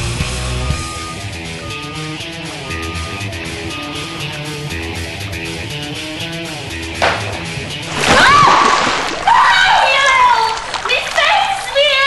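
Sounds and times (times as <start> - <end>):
water splashing on face: 7.0 - 11.8
woman shrieking and wailing: 8.0 - 10.6.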